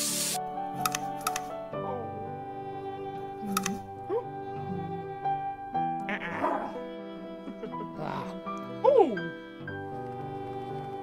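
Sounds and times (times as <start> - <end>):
background music: 0.0 - 11.0
dog-like growling and yapping: 6.1 - 6.8.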